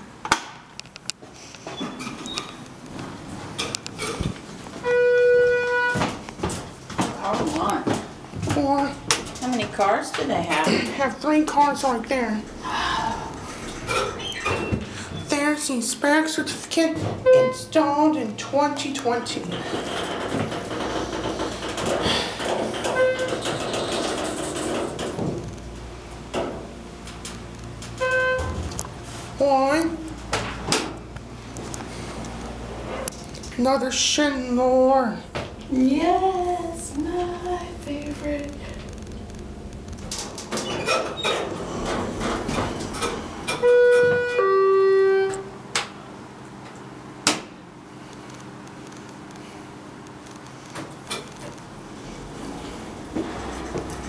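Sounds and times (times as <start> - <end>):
elevator machinery rushing: 1.8 - 15.8, 16.5 - 45.7, 51.3 - 54.0
elevator door click: 19.0 - 25.6, 26.3 - 29.0, 39.5 - 44.5.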